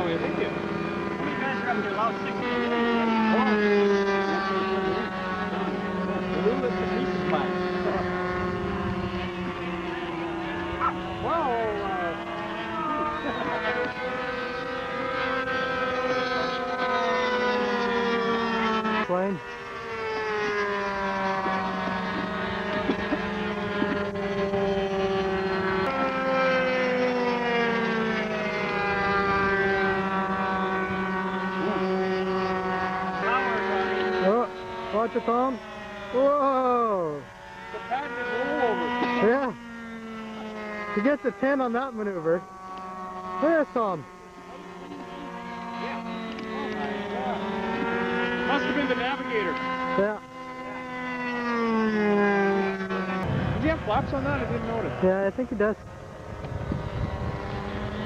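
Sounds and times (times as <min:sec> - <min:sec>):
model airplane engine drone: 0:00.0 - 0:58.0.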